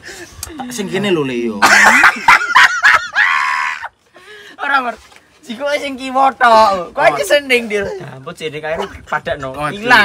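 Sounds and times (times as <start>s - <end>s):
men laughing: 1.6s - 4.0s, 7.9s - 10.0s.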